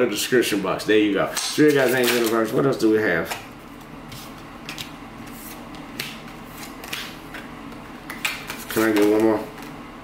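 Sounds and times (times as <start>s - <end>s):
cards being shuffled: 3.8s - 9.7s.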